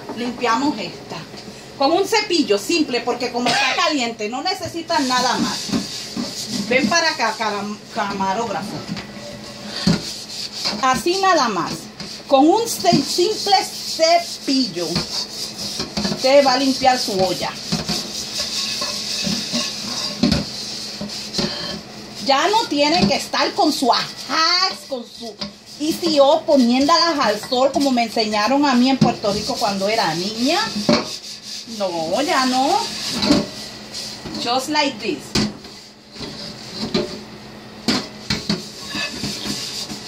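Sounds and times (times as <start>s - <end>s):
plastic brush scrubbing pot: 4.3s - 37.3s, 38.0s - 40.0s
pot clanking against sink: 17.1s - 21.8s, 30.6s - 31.2s
pot knocking against steel sink: 18.8s - 20.5s.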